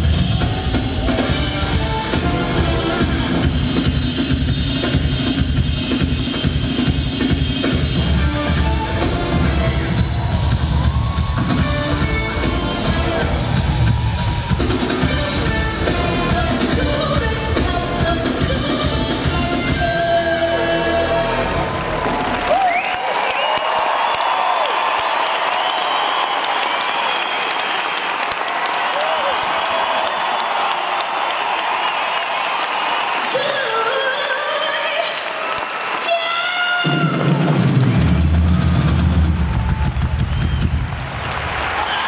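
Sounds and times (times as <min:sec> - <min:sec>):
live band music: 0:00.0 - 0:22.6
crowd cheering and applauding: 0:00.0 - 0:42.0.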